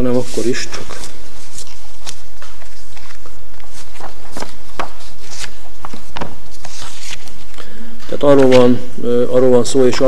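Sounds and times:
paper rustling: 0:00.0 - 0:08.8.

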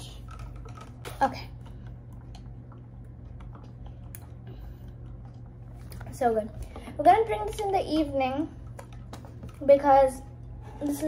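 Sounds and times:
steady low hum: 0:00.0 - 0:11.0
child speaking: 0:06.0 - 0:08.6, 0:09.6 - 0:11.0.

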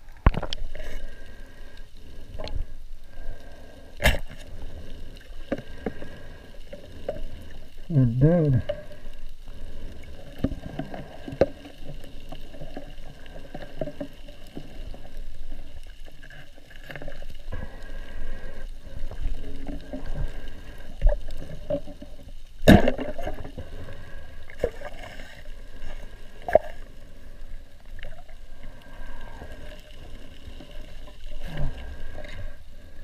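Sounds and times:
water sloshing: 0:03.4 - 0:33.0.

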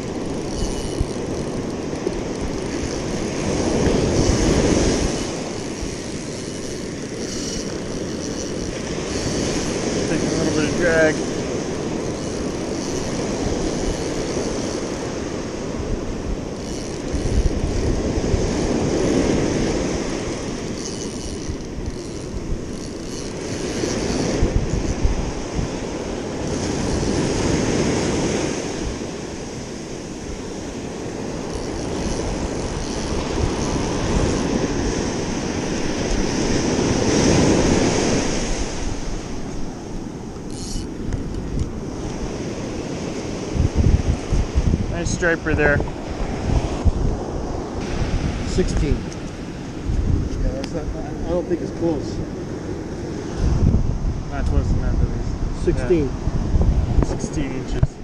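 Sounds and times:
ocean surf breaking on beach: 0:00.0 - 0:58.0
wind buffeting microphone: 0:00.0 - 0:58.0.

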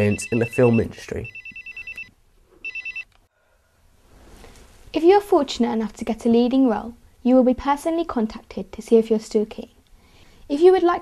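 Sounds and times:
phone ringing with electronic trill: 0:00.0 - 0:03.1.

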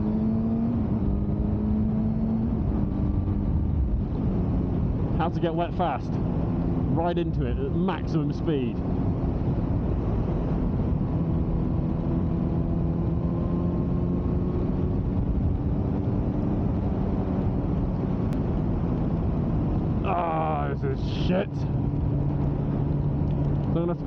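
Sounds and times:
motorcycle engine cruising: 0:00.0 - 0:24.0
wind noise: 0:00.0 - 0:24.0
person speaking: 0:06.9 - 0:08.8.

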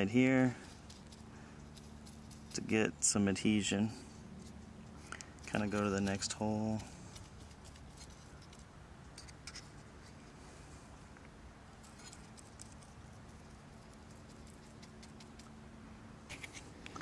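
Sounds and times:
faint steady hum: 0:00.0 - 0:17.0.

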